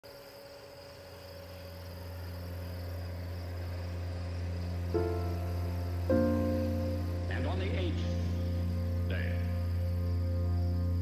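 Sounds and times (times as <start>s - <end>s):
crickets chirping: 0.0s - 11.0s
low steady hum: 0.2s - 11.0s
music notes: 3.0s - 11.0s.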